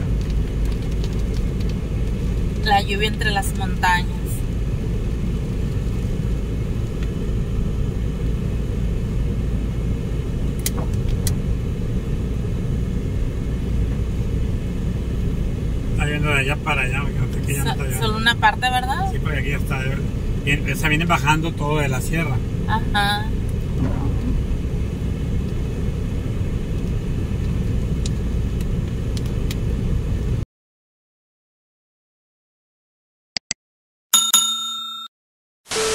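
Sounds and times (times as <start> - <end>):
car driving rumble from inside: 0.0 - 30.4
bell ringing: 34.2 - 35.1.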